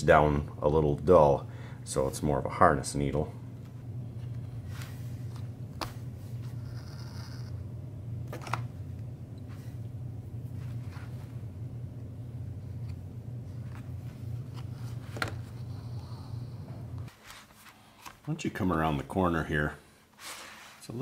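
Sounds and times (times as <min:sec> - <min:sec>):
steady low hum: 0:00.0 - 0:17.9.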